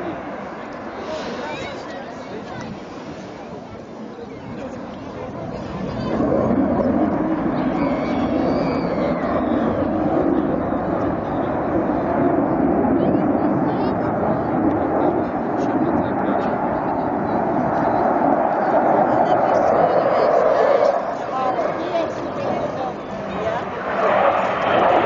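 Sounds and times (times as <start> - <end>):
distant jet engine rushing: 0.0 - 25.0.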